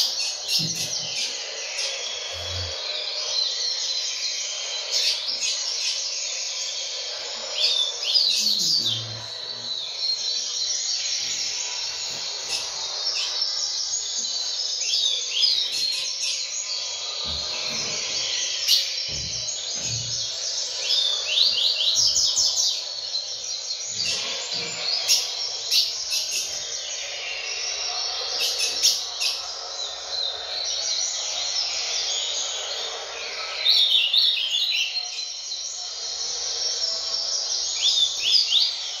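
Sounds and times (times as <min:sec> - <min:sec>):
bird singing rattling notes: 0:00.0 - 0:39.0.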